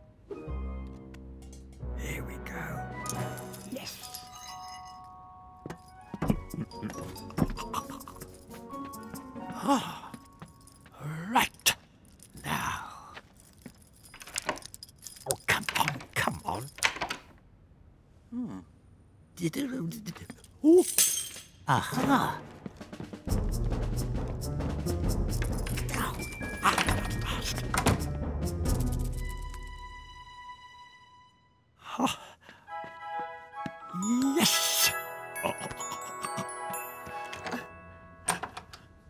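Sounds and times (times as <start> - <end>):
metal keys jangling: 3.0 - 5.1, 10.1 - 17.3, 25.3 - 28.1, 28.7 - 29.4, 35.4 - 38.9
man sighing: 9.6 - 10.3, 18.3 - 18.8, 31.8 - 32.5.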